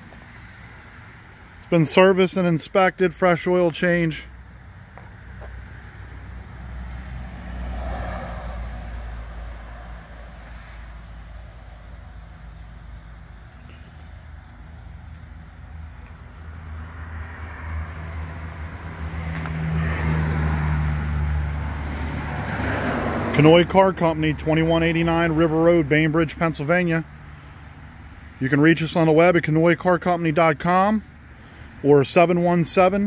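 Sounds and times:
car engine idling: 0.0 - 17.3.

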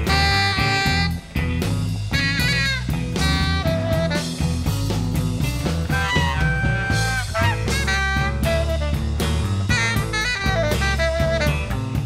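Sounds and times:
lead guitar bending notes: 0.0 - 11.9
bass and drum beat: 0.0 - 12.0.

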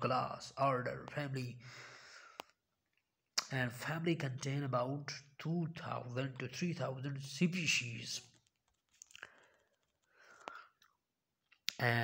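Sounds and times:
faint breaths and mouth sounds: 8.8 - 11.0.

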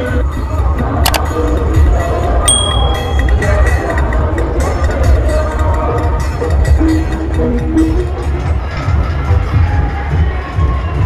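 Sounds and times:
bell ding: 2.5 - 3.8.

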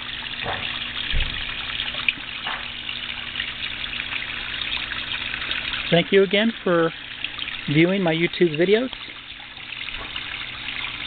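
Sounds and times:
small waterfall splashing: 0.0 - 11.0
low thump: 0.4 - 1.5.

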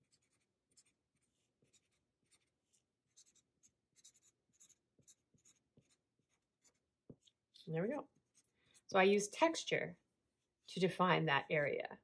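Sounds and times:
felt-tip marker scratching on paper: 0.0 - 7.4.

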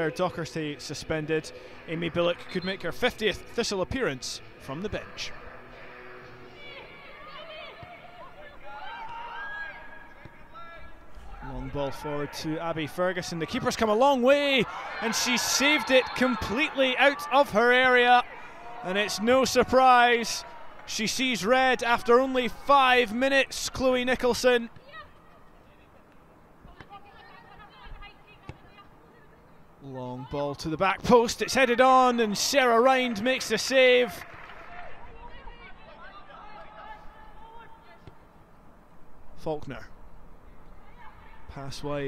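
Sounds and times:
players shouting and calling: 0.0 - 42.0.

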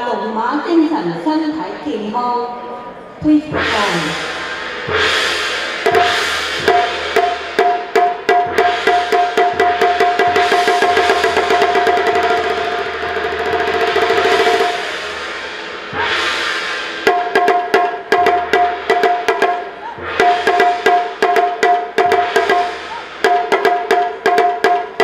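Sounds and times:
barrel drums beaten fast: 3.5 - 25.0
hand cymbals crashing: 3.5 - 25.0.

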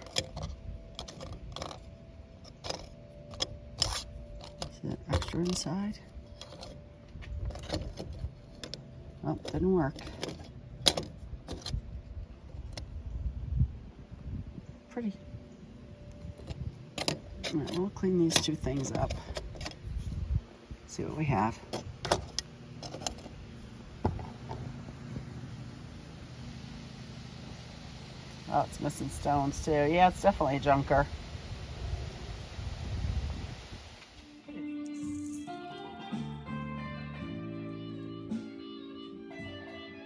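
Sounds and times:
low hum: 0.0 - 35.4.

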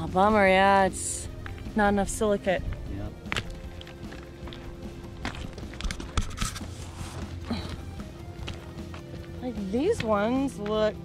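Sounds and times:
background music: 0.0 - 11.0
footsteps on gravel: 2.6 - 11.0.

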